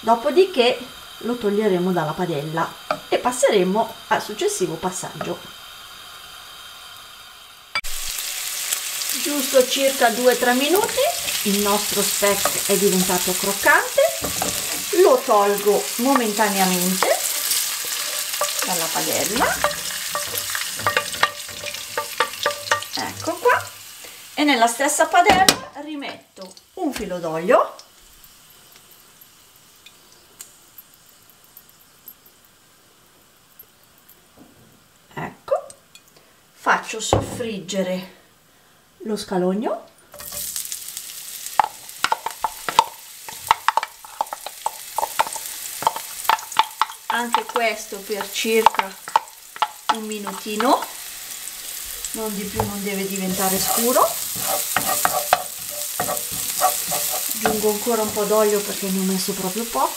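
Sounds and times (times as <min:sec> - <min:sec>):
meat sizzling in oil: 0:00.0 - 0:34.1, 0:40.1 - 0:59.9.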